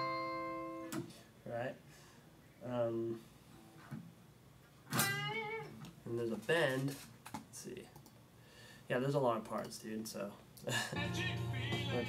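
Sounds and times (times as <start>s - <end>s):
electric guitar lead lick: 11.0s - 12.0s.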